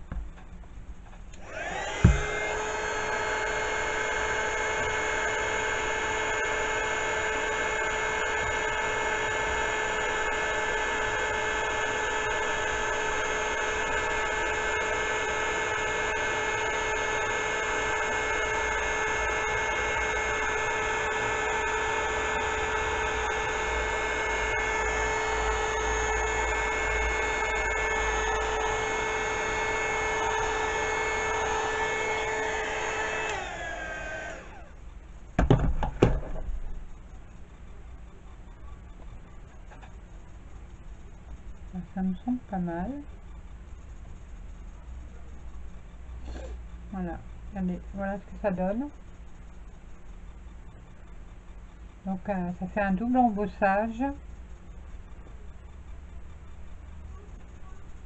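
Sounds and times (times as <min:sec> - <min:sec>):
fan spinning down: 0:00.0 - 0:58.0
heat gun motor whine: 0:01.2 - 0:37.3
sharp knocks: 0:35.4 - 0:36.5.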